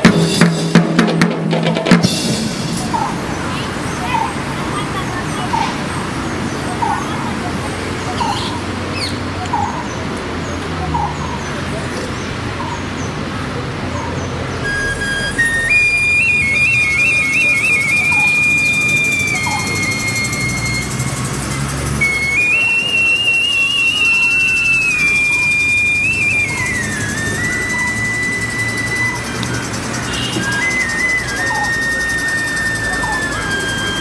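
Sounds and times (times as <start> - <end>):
drums playing: 0.0 - 7.6
shrill pipe melody: 0.0 - 8.7, 14.5 - 34.0.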